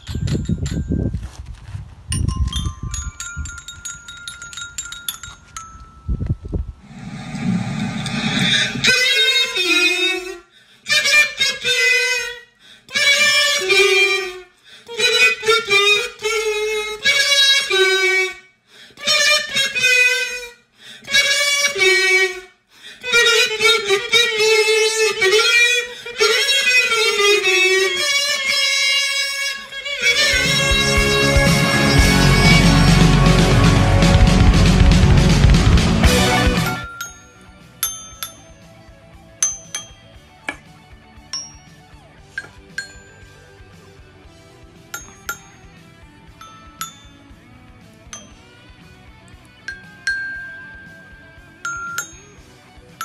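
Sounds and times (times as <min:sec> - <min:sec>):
wind rumble on microphone: 0:00.0 - 0:04.0, 0:05.7 - 0:08.9
kazoos buzzing: 0:27.0 - 0:35.2
metal chime notes ringing: 0:36.7 - 0:40.4, 0:41.3 - 0:43.8, 0:44.9 - 0:48.7, 0:49.6 - 0:53.0.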